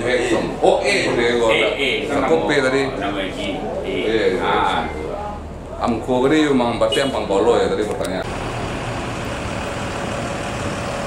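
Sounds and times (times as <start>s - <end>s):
diesel engine idling: 8.2s - 11.0s.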